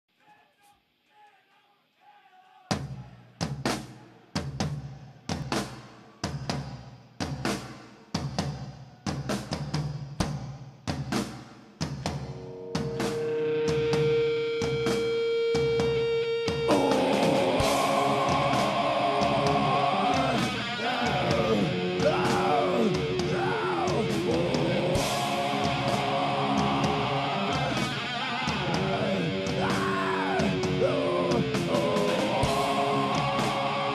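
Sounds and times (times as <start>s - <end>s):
distorted guitars: 12.1s - 33.9s
heavy metal band playing live: 12.1s - 33.9s.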